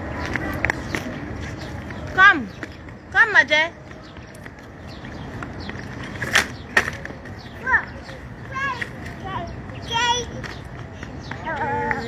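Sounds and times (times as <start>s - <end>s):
wheels rolling on pavement: 0.0s - 12.0s.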